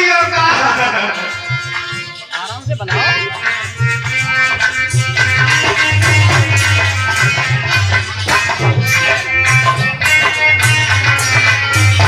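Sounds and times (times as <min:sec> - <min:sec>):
hand drum steady rhythm: 0:00.0 - 0:12.0
harmonium sustained notes: 0:00.0 - 0:12.0.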